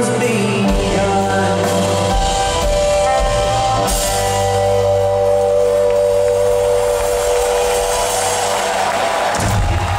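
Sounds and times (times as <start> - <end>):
crowd cheering: 3.8 - 9.9.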